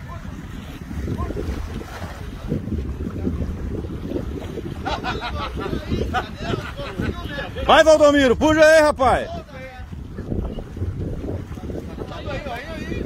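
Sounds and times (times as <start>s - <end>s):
voices: 0.0s - 13.0s
wind buffeting microphone: 0.0s - 13.0s.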